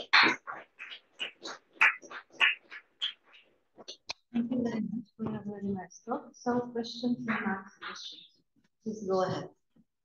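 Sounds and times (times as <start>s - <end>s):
small audience clapping: 0.0s - 4.5s.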